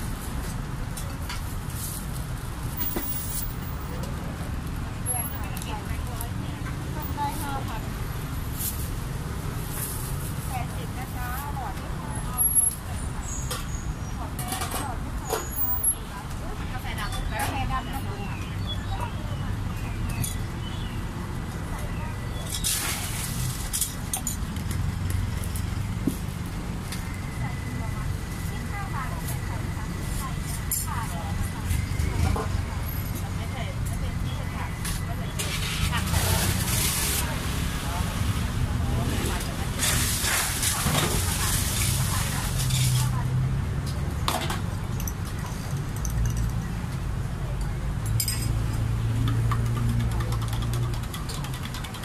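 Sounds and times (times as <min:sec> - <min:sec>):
low rumble of road traffic: 0:00.0 - 0:52.0
background chatter: 0:02.7 - 0:52.0
clinks of spoons and glasses: 0:44.9 - 0:46.7, 0:48.1 - 0:48.6.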